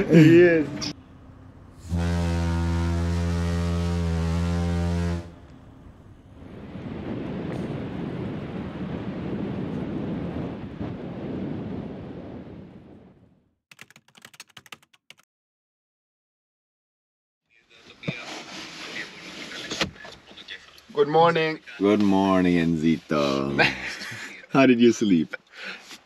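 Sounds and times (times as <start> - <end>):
ship's horn blast: 1.7 - 5.8
wind rushing: 6.3 - 13.2.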